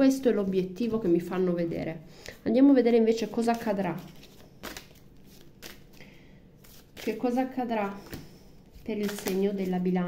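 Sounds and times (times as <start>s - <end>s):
deck of cards rustling: 3.3s - 10.0s.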